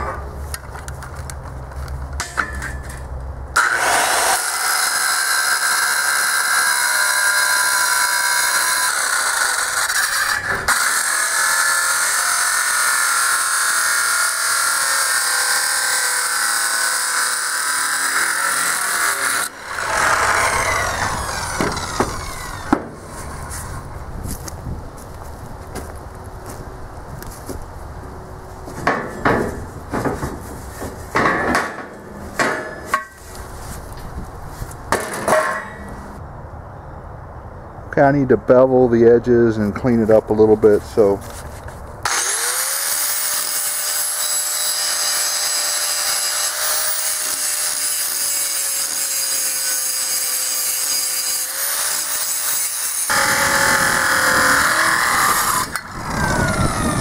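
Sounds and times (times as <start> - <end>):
circular saw cutting steel: 3.6 - 23.9, 42.0 - 57.0
sharp knocks: 28.8 - 33.2.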